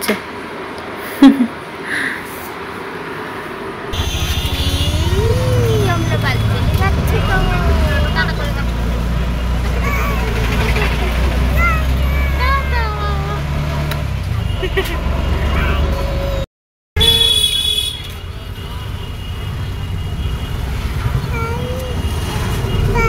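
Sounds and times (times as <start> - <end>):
toddler cooing and squealing: 9.8 - 10.6, 11.4 - 13.4.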